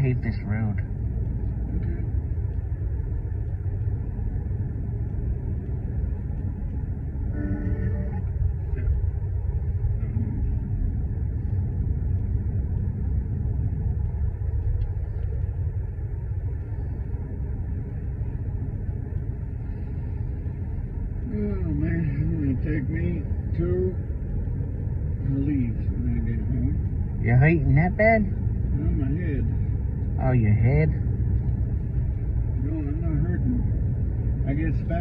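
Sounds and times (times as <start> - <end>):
car driving interior rumble: 0.0 - 35.0.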